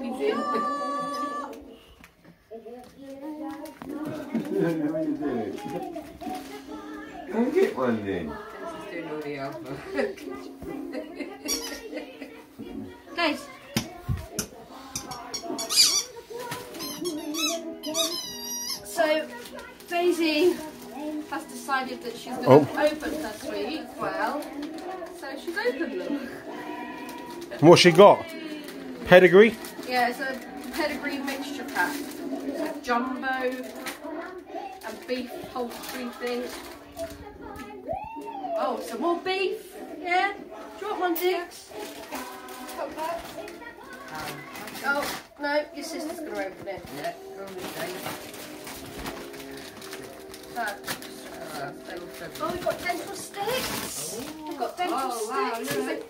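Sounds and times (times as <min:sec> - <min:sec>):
indistinct background chatter: 0:00.0 - 0:56.0
squeaky toy squeaking: 0:11.5 - 0:11.9, 0:14.9 - 0:16.2, 0:16.8 - 0:19.0
dog chewing toy: 0:14.4 - 0:19.0.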